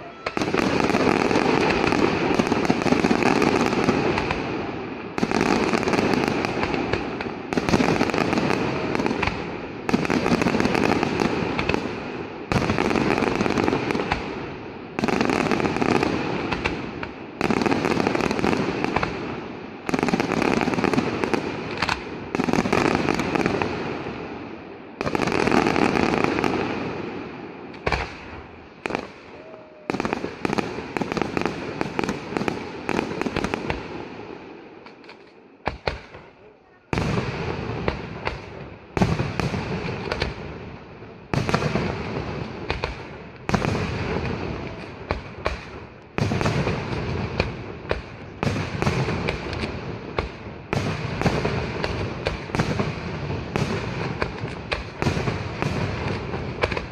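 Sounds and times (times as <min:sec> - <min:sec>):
firework hiss and crackle: 0:00.0 - 0:56.9
firework salvos banging: 0:00.0 - 0:56.9
scattered firework pops: 0:00.2 - 0:04.5, 0:05.2 - 0:14.4, 0:15.0 - 0:19.2, 0:19.8 - 0:23.8, 0:27.7 - 0:33.9, 0:34.8 - 0:40.5, 0:41.3 - 0:56.9.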